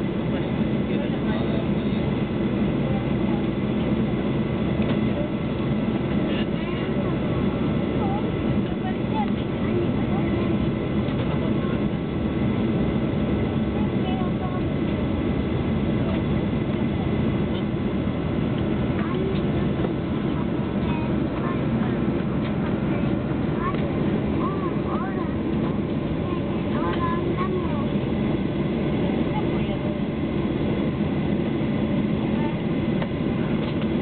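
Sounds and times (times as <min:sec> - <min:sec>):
airplane cabin engine drone: 0:00.0 - 0:34.0
faint passenger voices: 0:00.0 - 0:34.0.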